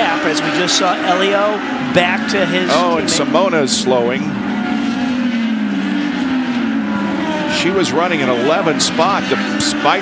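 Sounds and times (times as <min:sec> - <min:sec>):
race car engine running: 0:00.0 - 0:10.0.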